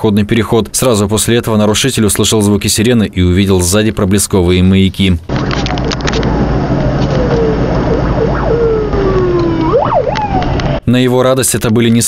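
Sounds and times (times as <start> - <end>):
road noise: 5.2 - 10.9
car engine drone: 5.3 - 10.8
ambulance siren wailing: 5.3 - 10.9.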